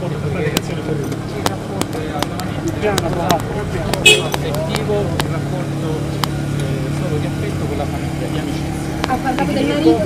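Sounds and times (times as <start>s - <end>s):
crowd voices: 0.0s - 10.0s
vehicle engine idling: 0.0s - 10.0s.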